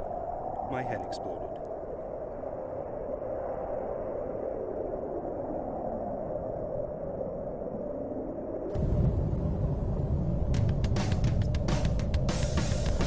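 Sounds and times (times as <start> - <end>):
explosion rumble roar: 8.7 - 11.7.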